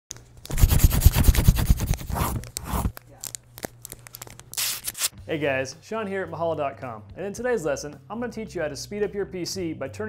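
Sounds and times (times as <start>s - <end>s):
paper crumpling and crackling: 0.5s - 5.1s.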